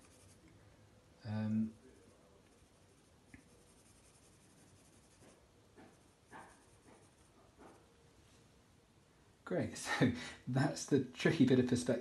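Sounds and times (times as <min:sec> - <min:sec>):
pencil scratching on paper: 0:00.0 - 0:00.4, 0:02.0 - 0:07.8.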